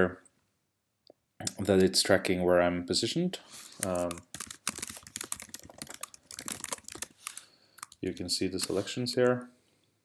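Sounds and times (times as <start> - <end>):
typing on computer keyboard: 3.8 - 8.0.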